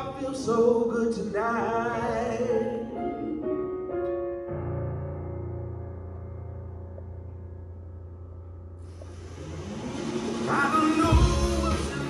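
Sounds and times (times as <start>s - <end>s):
film soundtrack swell: 8.8s - 12.0s
loud rock song: 9.8s - 12.0s.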